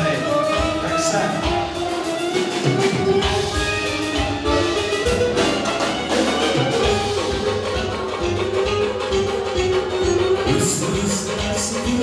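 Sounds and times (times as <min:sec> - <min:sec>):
live band playing dance music: 0:00.0 - 0:12.0
steady drum beat: 0:00.0 - 0:12.0.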